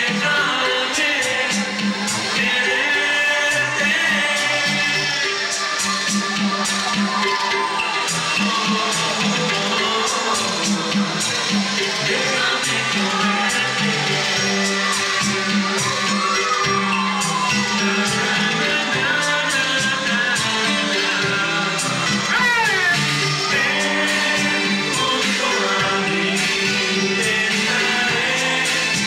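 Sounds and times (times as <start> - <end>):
man singing: 0.0 - 5.9, 8.0 - 16.6, 17.6 - 29.0
crowd: 0.0 - 29.0
synth-pop dance beat with keyboards: 0.0 - 29.0.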